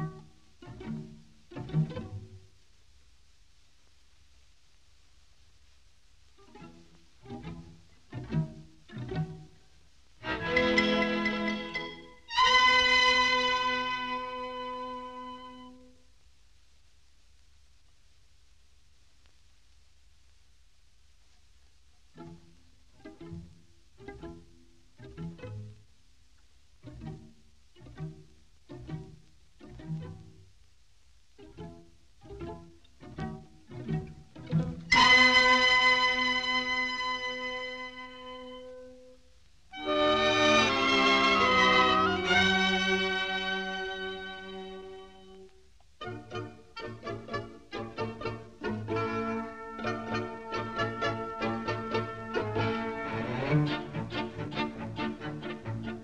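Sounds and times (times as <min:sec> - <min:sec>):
orchestral strings music: 0:00.0 - 0:02.6, 0:06.4 - 0:15.9, 0:22.1 - 0:25.8, 0:26.8 - 0:30.5, 0:31.4 - 0:56.0.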